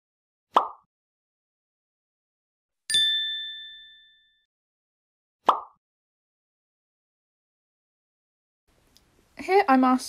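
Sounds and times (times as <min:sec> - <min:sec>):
bright two-tone ding: 0:02.9 - 0:04.5.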